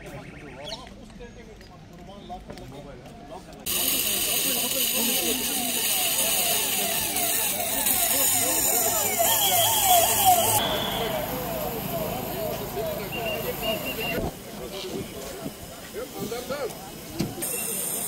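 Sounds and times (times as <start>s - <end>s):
vehicle siren yelping: 6.1s - 14.2s.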